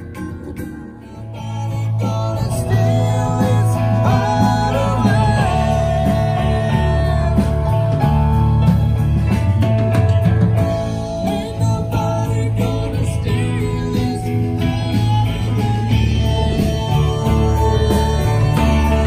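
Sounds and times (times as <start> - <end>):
live band with guitar and drums: 0.0 - 19.0.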